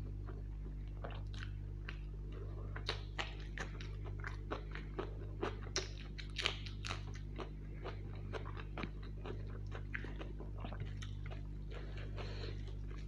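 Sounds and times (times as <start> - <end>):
chewing food: 0.0 - 13.0.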